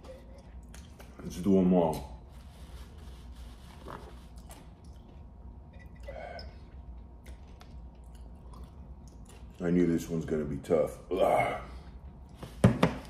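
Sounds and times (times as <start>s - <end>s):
person chewing: 3.7s - 9.6s.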